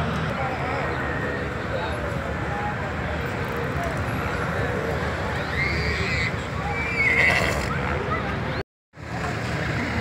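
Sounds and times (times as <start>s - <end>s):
crowd chatter: 0.0s - 10.0s
horse whinnying: 7.0s - 7.7s.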